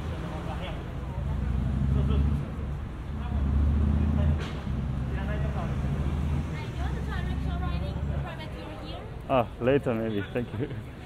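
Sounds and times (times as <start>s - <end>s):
passersby talking indistinctly: 0.0s - 11.0s
traffic rumble: 0.0s - 11.0s.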